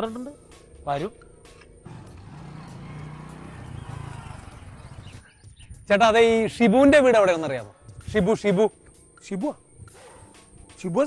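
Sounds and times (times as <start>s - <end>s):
small motorcycle engine running: 1.9s - 5.2s.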